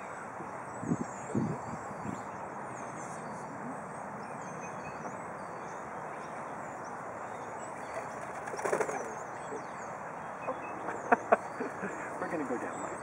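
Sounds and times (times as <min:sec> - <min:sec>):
small birds chirping: 0:00.0 - 0:13.0
steady outdoor hiss: 0:00.0 - 0:13.0.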